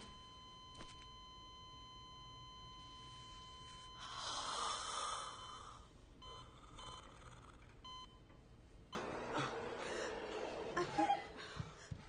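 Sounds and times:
monitor continuous beep tone: 0.0 - 9.0.

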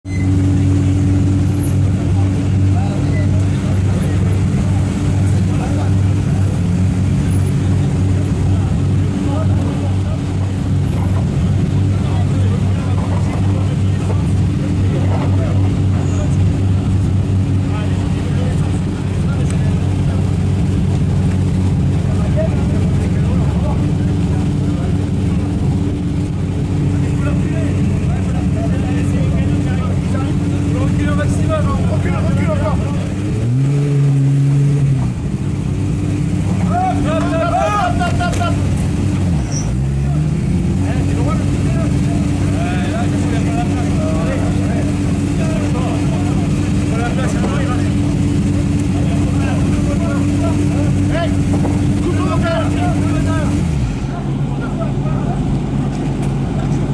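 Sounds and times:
car engines idling: 0.0 - 56.9.

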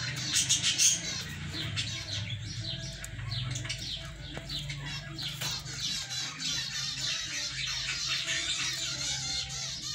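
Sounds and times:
birds chirping: 0.0 - 9.9.

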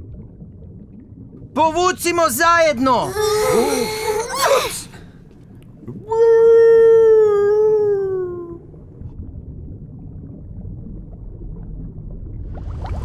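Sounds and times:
low underwater rumble: 0.0 - 1.6, 5.1 - 13.0.

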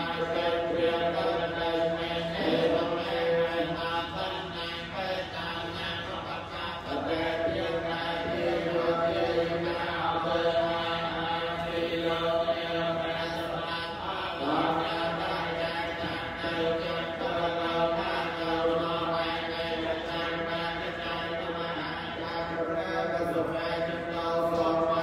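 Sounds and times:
monks chanting through a microphone: 0.0 - 25.0.

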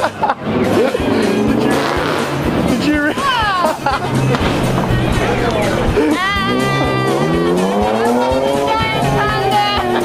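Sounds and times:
voices: 2.6 - 10.0.

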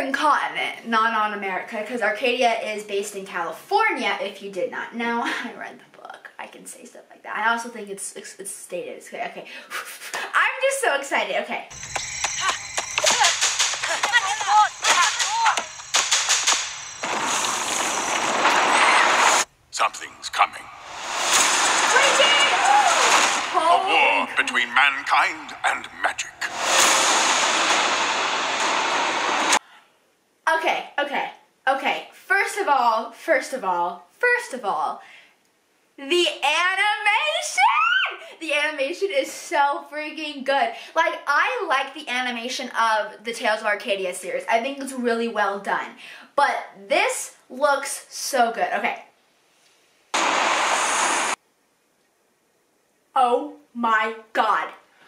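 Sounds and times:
loud steady rushing noise: 11.9 - 23.8, 24.4 - 29.6, 50.2 - 51.4
burst of hissing noise: 20.2 - 23.6, 25.4 - 29.6, 50.2 - 51.4.

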